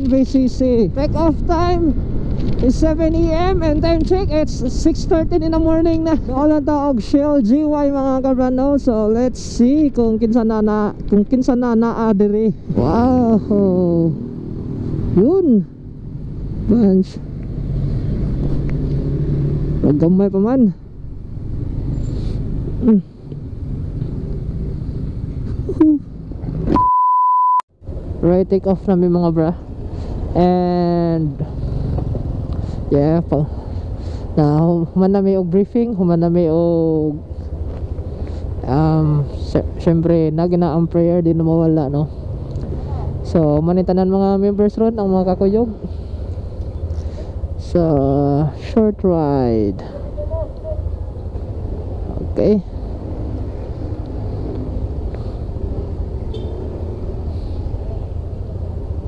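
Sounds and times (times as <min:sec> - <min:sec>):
censor bleep: 0:26.7 - 0:27.7.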